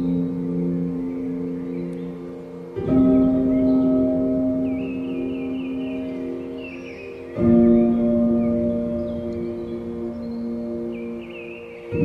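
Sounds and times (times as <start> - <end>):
bell-like chord ringing: 0.0 - 12.0.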